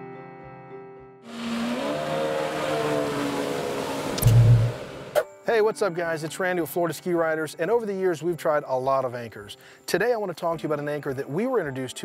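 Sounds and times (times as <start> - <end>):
whooshing transition effect: 1.4 - 5.2
soft guitar music: 5.2 - 12.0.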